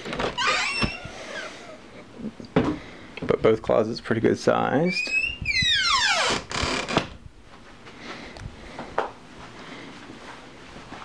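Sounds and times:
sliding door squeal: 0.4s - 1.6s.

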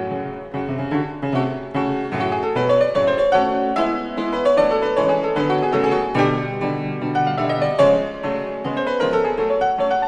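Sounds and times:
classical piano music: 0.0s - 10.0s.

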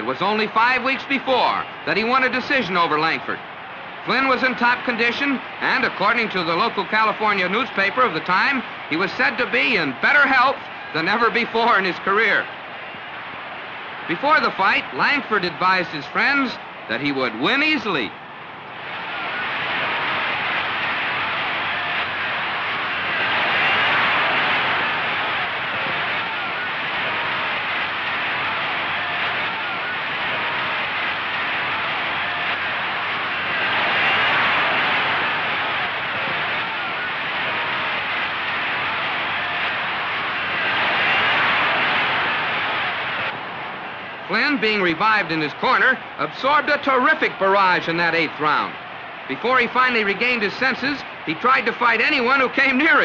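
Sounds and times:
crowd din of many voices: 0.0s - 53.0s.

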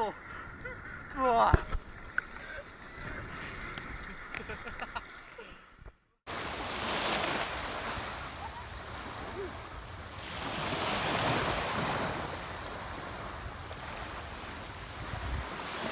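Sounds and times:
wind on microphone: 0.0s - 4.9s, 6.7s - 15.9s
small waves washing in: 6.3s - 15.9s.

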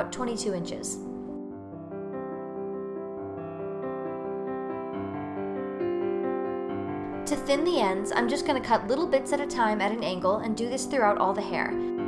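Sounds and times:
slow keyboard melody: 0.0s - 9.6s, 10.4s - 12.0s.

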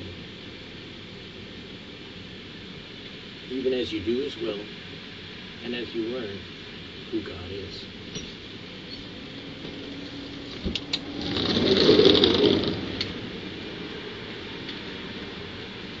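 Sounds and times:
low background hum: 0.0s - 16.0s
rustling whoosh past microphone: 10.5s - 13.0s.

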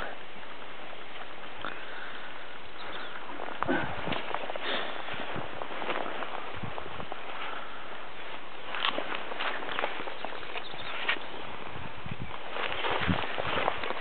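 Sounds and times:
background hiss: 0.0s - 14.0s
footsteps on grass: 3.0s - 14.0s.

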